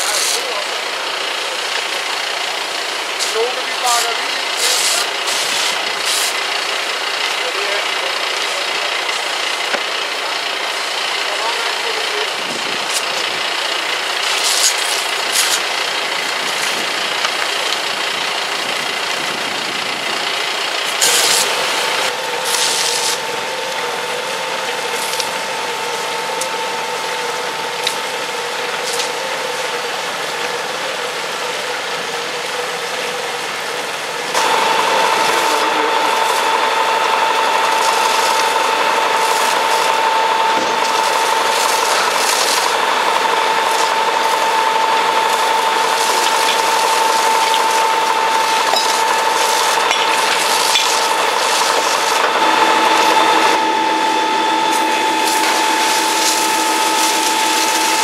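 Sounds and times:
fire engine pump running: 0:00.0 - 0:58.0
steady whine: 0:00.0 - 0:58.0.

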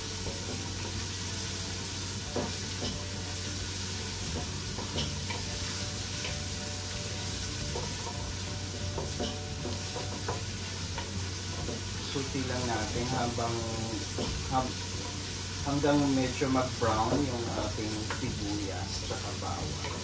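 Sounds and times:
onion sizzling in hot oil: 0:00.0 - 0:20.0.

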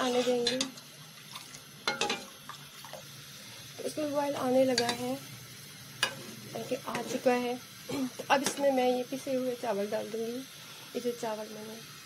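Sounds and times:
faint steady hiss: 0:00.0 - 0:12.0
spoon clinking against pan: 0:01.8 - 0:02.3.

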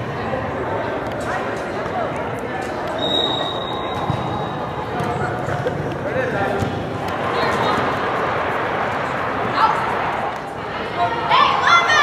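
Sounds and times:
people shouting and calling out: 0:09.5 - 0:12.0.

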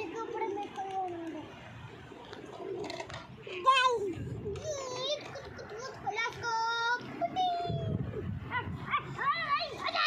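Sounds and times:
child calling out and babbling: 0:00.0 - 0:01.5, 0:03.5 - 0:10.0.

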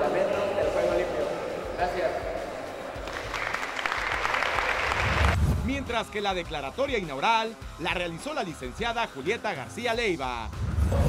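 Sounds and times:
crowd applauding: 0:02.7 - 0:05.4.

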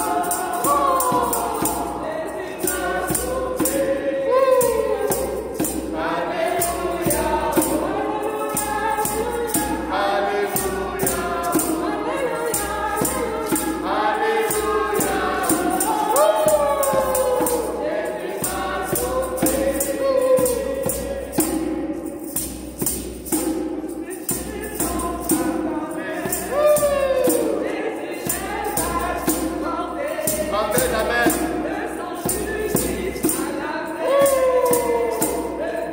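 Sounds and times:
women singing a hymn in parts: 0:00.0 - 0:22.4, 0:23.3 - 0:35.9
hand drum beat: 0:00.0 - 0:35.9.

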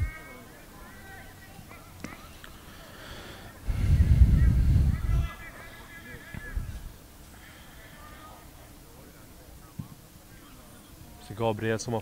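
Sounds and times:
distant voices calling out: 0:00.0 - 0:11.2.

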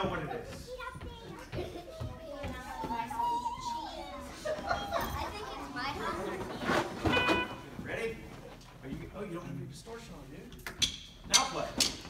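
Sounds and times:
children chattering: 0:00.1 - 0:07.3.

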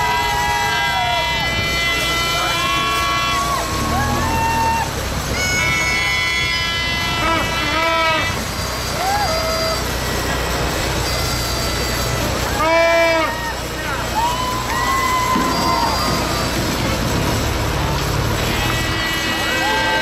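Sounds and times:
young people shouting and whooping: 0:00.0 - 0:10.3, 0:11.4 - 0:20.0
truck engine running low: 0:00.0 - 0:20.0.

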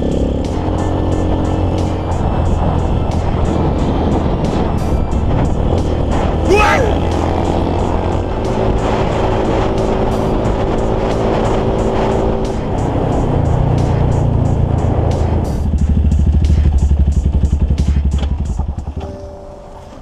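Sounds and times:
small motorcycle engine running: 0:15.2 - 0:19.0.

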